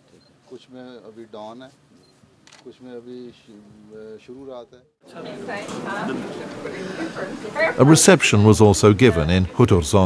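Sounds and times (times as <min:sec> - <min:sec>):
men talking quietly: 0:00.0 - 0:10.0.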